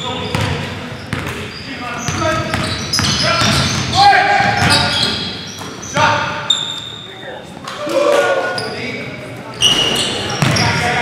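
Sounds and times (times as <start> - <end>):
sneakers squeaking: 0.0 - 7.8, 8.4 - 11.0
basketball bouncing: 2.1 - 4.9, 10.4 - 10.8.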